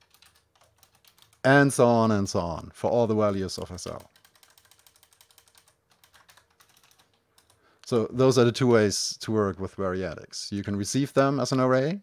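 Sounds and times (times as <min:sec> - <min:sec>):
keyboard keystrokes: 0:03.8 - 0:08.0.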